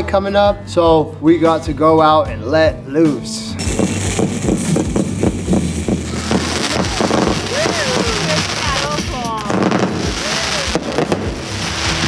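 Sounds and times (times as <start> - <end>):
firework fountain hissing and popping: 3.6 - 12.0.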